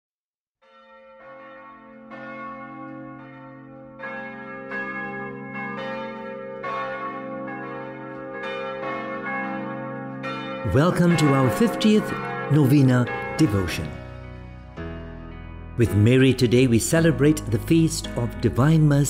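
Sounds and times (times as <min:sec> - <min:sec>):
bells ringing: 0:00.6 - 0:14.6, 0:15.8 - 0:19.0.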